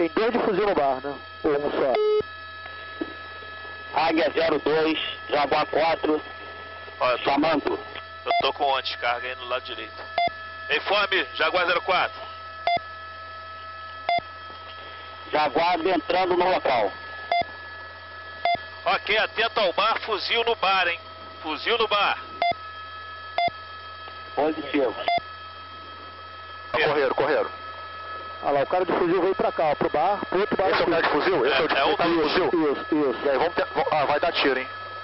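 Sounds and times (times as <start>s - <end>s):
radio channel hum: 0.0s - 35.0s
short electronic radio beeps: 1.9s - 2.2s, 8.3s - 8.6s, 25.0s - 25.3s
radio beep: 1.9s - 2.3s, 8.3s - 8.7s, 10.2s - 10.4s, 16.8s - 17.5s, 18.4s - 18.6s, 21.7s - 22.6s, 24.6s - 25.3s.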